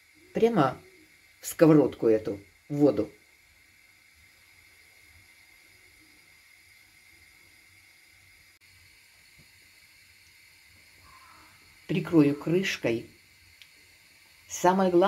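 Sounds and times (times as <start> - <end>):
water heating in frying pan: 0.0 - 15.0.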